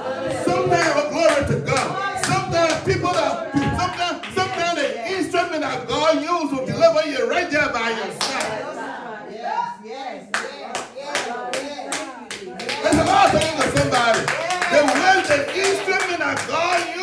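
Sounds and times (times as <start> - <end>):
hand clapping in steady beat: 0.4 - 5.4, 8.2 - 8.6, 10.3 - 17.0.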